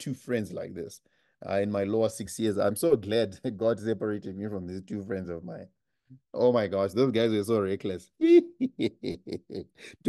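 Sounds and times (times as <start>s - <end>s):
man laughing: 8.2s - 10.0s.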